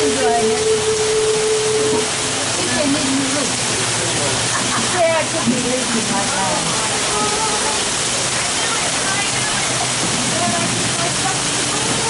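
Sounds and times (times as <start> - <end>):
heavy rain pouring: 0.0 - 12.0
faint voices: 1.9 - 12.0.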